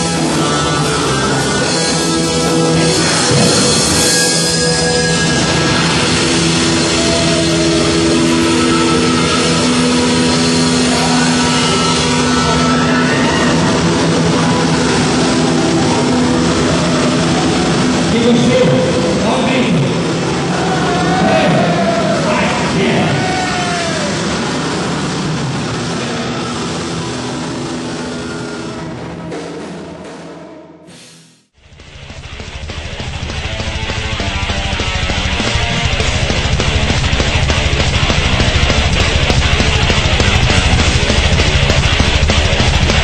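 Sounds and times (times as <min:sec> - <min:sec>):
distorted guitar chord: 0:00.0 - 0:29.9, 0:31.6 - 0:43.0
heavy metal band playing live: 0:00.0 - 0:30.6, 0:31.6 - 0:43.0
cymbals crashing: 0:00.0 - 0:31.4.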